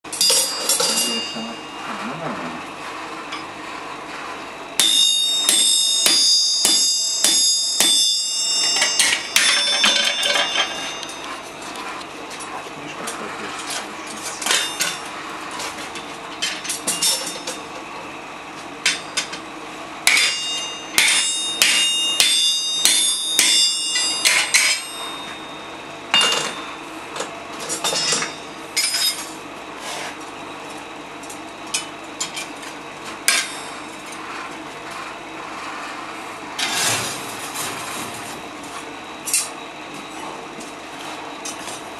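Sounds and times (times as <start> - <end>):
metal clinks on anvil: 0.1 - 1.6, 4.8 - 11.3
bright metallic ringing: 0.1 - 2.0, 4.8 - 12.0, 14.3 - 15.2, 20.0 - 27.0, 27.6 - 29.4
hammer striking punch on hot steel: 4.8 - 11.1, 20.1 - 25.1.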